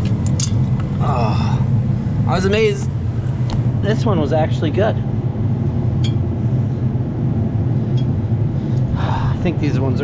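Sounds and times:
loud low mechanical hum: 0:00.0 - 0:10.0.

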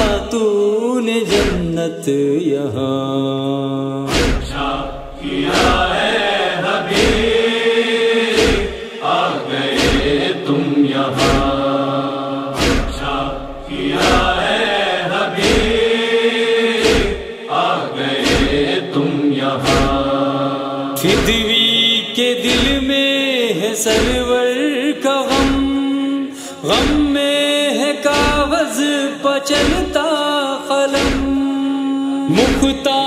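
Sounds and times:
chorus humming a chant: 0:00.0 - 0:27.2
heavy chest-beating rhythm: 0:01.3 - 0:01.8, 0:04.1 - 0:07.7, 0:08.3 - 0:10.4, 0:11.1 - 0:11.8, 0:12.6 - 0:16.1, 0:16.8 - 0:18.8, 0:19.6 - 0:20.2, 0:21.0 - 0:23.0, 0:23.9 - 0:24.4, 0:25.3 - 0:25.8, 0:28.1 - 0:28.6, 0:29.6 - 0:30.0, 0:30.9 - 0:31.5.

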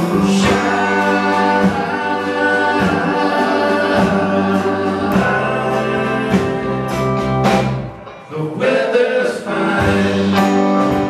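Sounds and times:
live rock band playing: 0:00.0 - 0:11.0
voices singing: 0:00.0 - 0:11.0.

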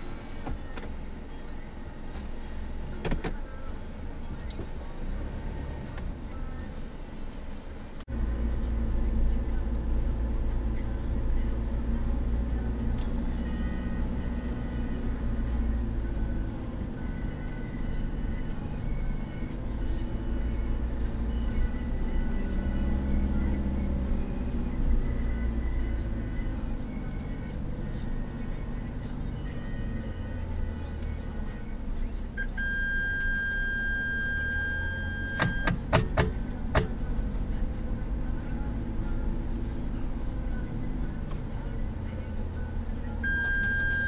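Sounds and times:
steady high tone: 0:32.4 - 0:35.7.

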